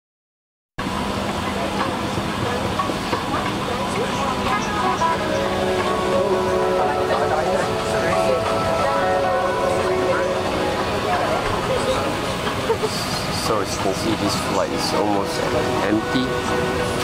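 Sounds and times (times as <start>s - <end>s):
airliner cabin hum: 0.8s - 17.0s
passengers talking: 0.8s - 17.0s.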